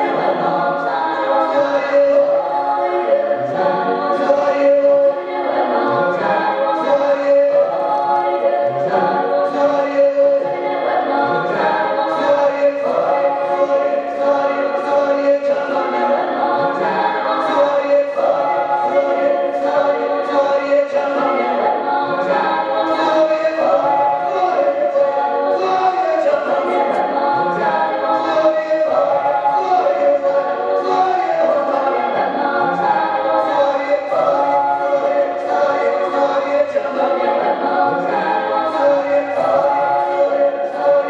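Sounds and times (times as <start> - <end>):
choir singing in harmony: 0.0 - 41.0.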